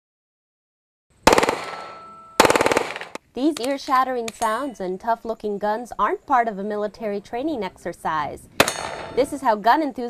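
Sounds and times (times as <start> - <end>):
automatic gunfire: 1.3 - 3.2.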